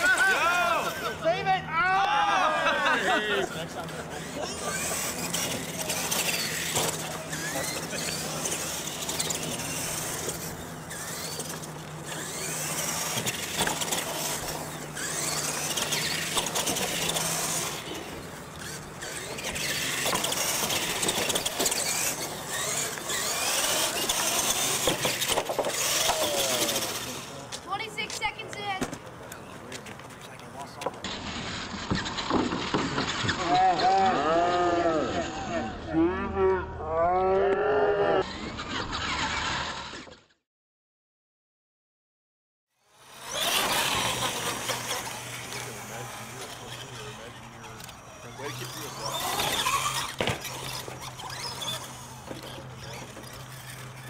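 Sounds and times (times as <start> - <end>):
toy truck motors whining: 0.0 - 40.4, 42.8 - 54.0.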